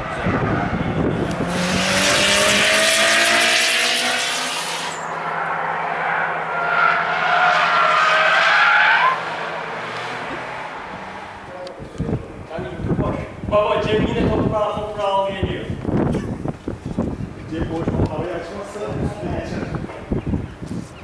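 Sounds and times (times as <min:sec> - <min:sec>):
car tyres skidding and squealing: 0:00.0 - 0:11.6
car engine revving: 0:00.0 - 0:12.4.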